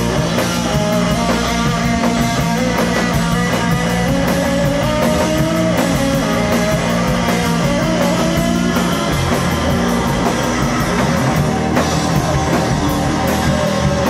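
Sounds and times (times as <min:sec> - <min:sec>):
drums: 0:00.0 - 0:14.0
electric guitar: 0:00.0 - 0:14.0.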